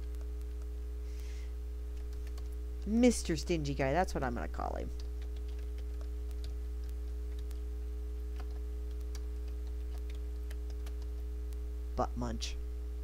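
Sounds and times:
steady low hum: 0:00.0 - 0:13.0
keyboard keys clicking: 0:02.0 - 0:02.5, 0:08.4 - 0:11.1.

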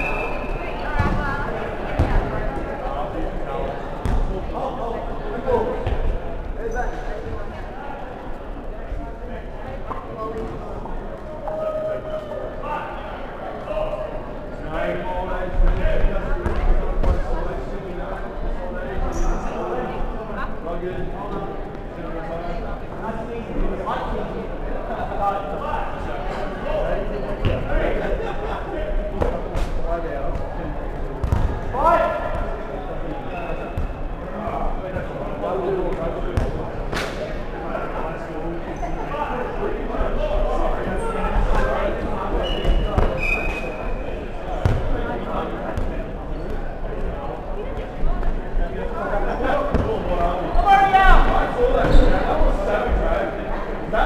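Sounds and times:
voices calling out echoing: 0:48.6 - 0:54.0.

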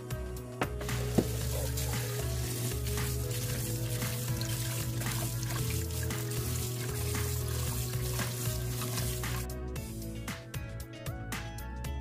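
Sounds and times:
background music with bass notes: 0:00.0 - 0:12.0
tap water splashing into strainer: 0:00.9 - 0:09.5.

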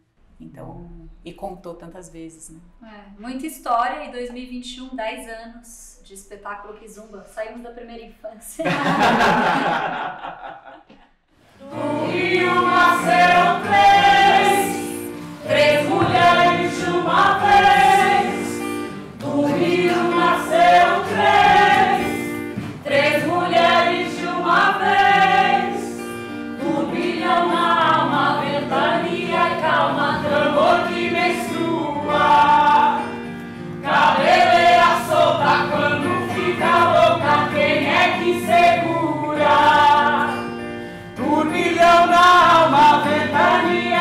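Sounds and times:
group of voices singing: 0:08.6 - 0:10.3, 0:11.5 - 0:40.5, 0:41.2 - 0:44.0.

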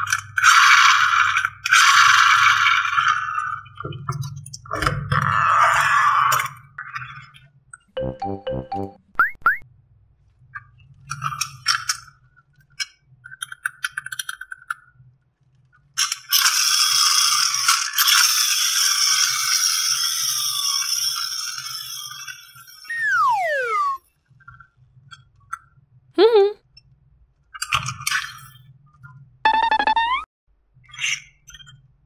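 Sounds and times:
plastic toys clicking and rattling: 0:12.7 - 0:14.9.

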